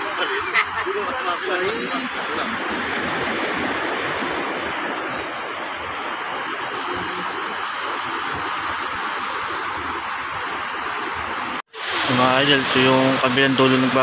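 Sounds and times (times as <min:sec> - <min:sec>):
sea surf on a beach: 0:00.0 - 0:14.0.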